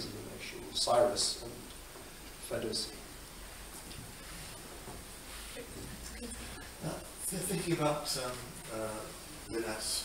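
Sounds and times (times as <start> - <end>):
man speaking: 0.0 - 1.8, 2.4 - 3.2, 6.6 - 10.0.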